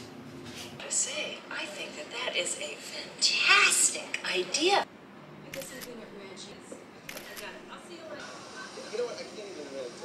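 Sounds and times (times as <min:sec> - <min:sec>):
camera shutter clicks: 0:07.1 - 0:07.5.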